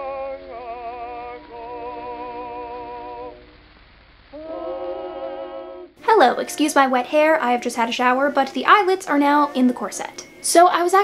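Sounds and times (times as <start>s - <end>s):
old vocal recording held chord: 0.0s - 3.6s, 4.4s - 11.0s.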